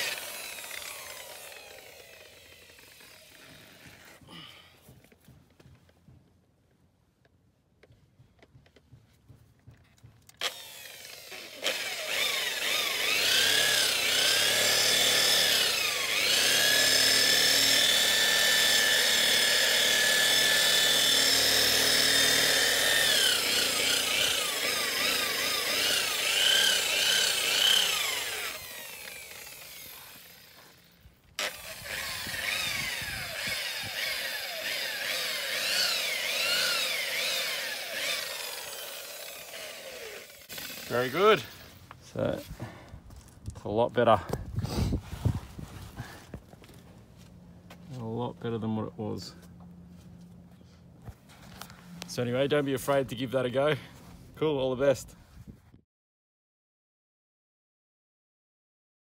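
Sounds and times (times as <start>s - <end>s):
rotary polisher motor whine: 0.0s - 4.1s, 10.4s - 41.8s.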